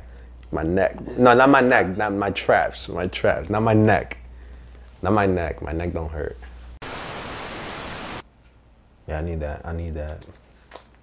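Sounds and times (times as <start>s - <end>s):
television static hiss: 6.8s - 8.2s.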